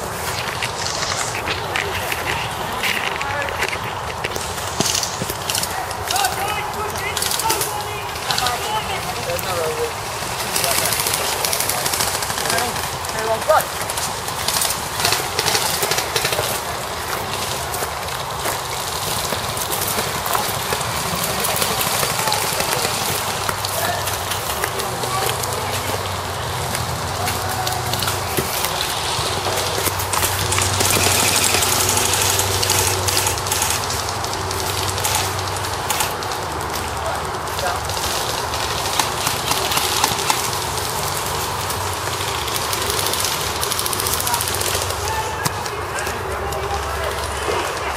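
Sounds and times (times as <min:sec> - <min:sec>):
people shouting: 0:05.6 - 0:09.3, 0:20.3 - 0:28.7, 0:44.4 - 0:47.9.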